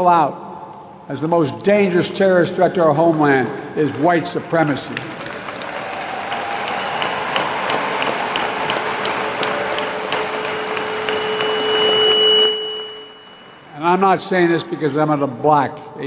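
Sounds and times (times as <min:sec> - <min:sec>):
audience applauding: 0:02.9 - 0:13.8
long held call: 0:05.7 - 0:13.8.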